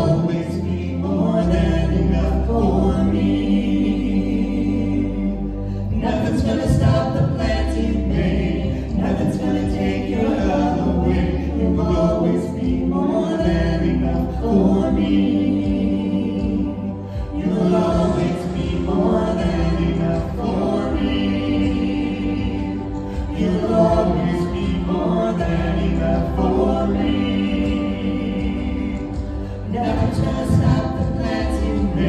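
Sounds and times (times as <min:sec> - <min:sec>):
vocal trio singing in harmony: 0:00.0 - 0:32.0.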